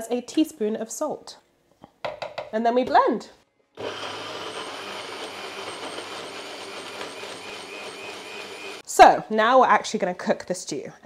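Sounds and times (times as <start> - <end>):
blender motor whining: 3.8 - 8.8.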